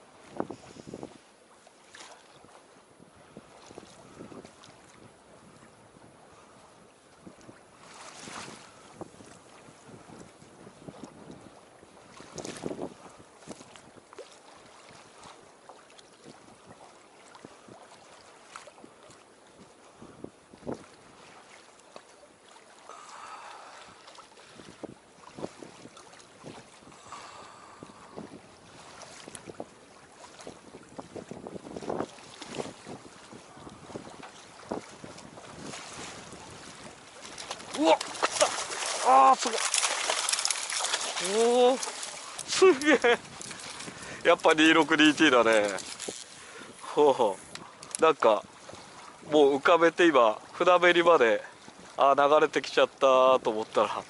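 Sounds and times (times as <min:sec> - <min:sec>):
wind on microphone: 0:00.0 - 0:01.3, 0:02.4 - 0:14.2, 0:18.7 - 0:21.3, 0:23.4 - 0:49.7
water lapping against boat hull: 0:00.0 - 0:54.0
soft knocks and splashes: 0:01.6 - 0:02.6, 0:12.0 - 0:19.2, 0:28.8 - 0:46.4.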